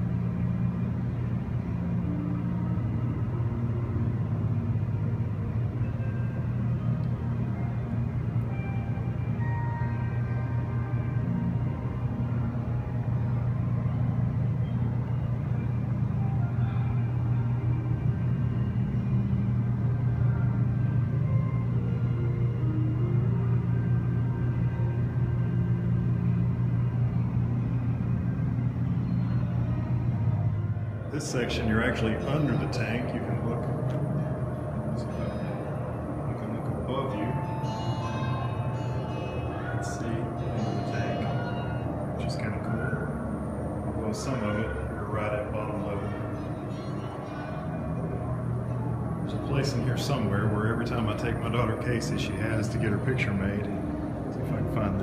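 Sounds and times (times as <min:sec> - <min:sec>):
soft ambient music: 0:00.0 - 0:55.0
steady low hum: 0:00.0 - 0:55.0.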